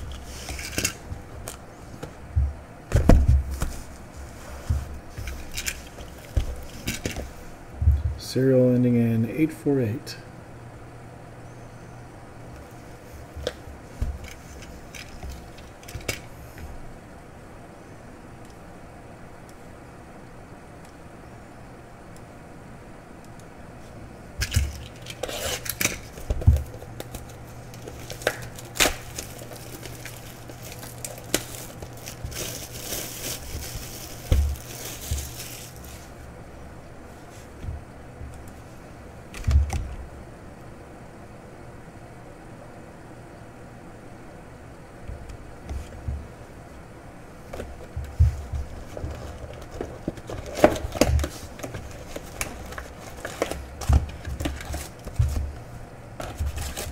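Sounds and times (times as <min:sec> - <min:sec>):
low steady hum: 0:00.0 - 0:56.9
cellophane crinkling and tearing: 0:24.4 - 0:36.2, 0:48.5 - 0:55.5, 0:56.2 - 0:56.9.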